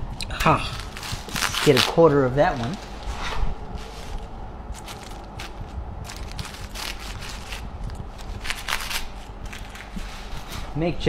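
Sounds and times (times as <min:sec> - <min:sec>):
paper wrapper crinkling: 0:00.6 - 0:03.1, 0:03.7 - 0:10.5.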